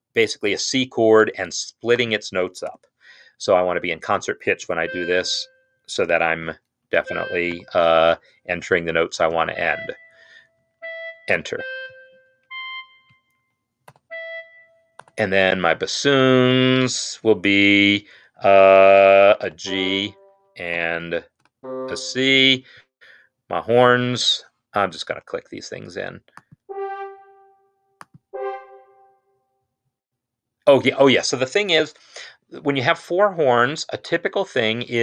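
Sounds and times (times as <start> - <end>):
held synthesized notes: 4.8 - 5.6, 7.0 - 8.2, 9.4 - 13.2, 14.0 - 15.2, 19.6 - 20.7, 21.6 - 22.6, 26.7 - 29.2.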